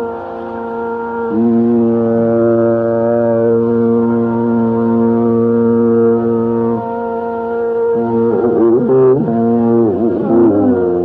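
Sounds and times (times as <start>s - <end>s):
man singing a low note: 0.0s - 11.0s
steady drone: 0.0s - 11.0s.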